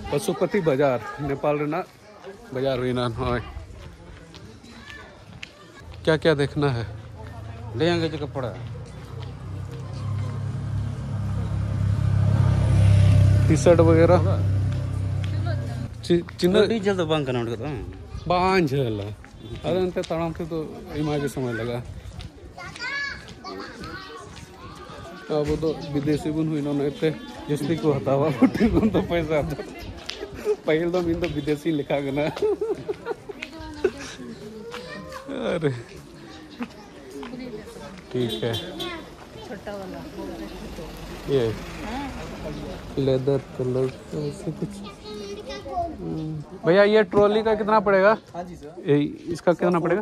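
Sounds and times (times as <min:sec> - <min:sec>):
street noise: 0:00.0 - 0:50.0.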